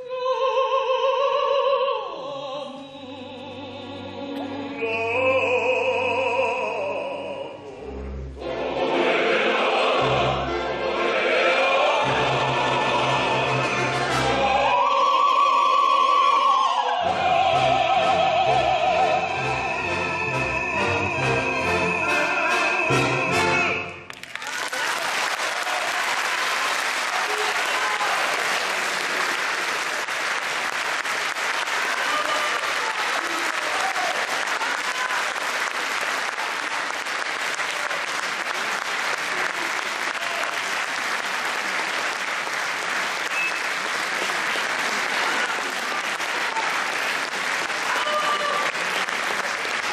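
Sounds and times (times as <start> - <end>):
audience applauding: 24.0 - 49.9.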